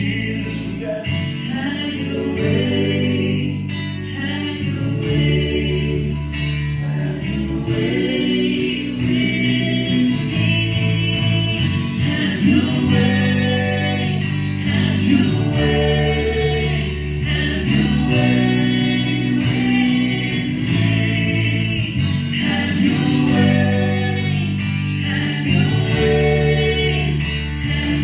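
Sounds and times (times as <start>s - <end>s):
strummed acoustic and electric guitar: 0.0s - 28.0s
voices singing together: 0.0s - 28.0s.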